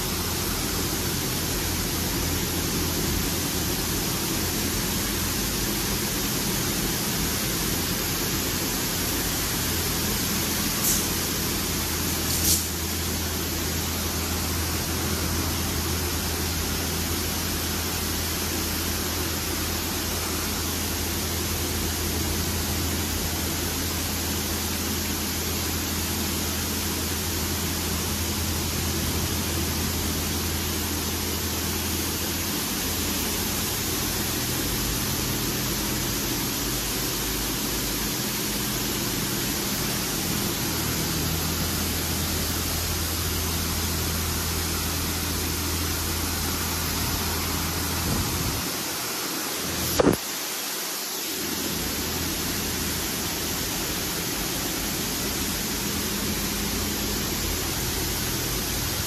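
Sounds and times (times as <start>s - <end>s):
high-pressure water spray hissing: 0.0s - 59.0s.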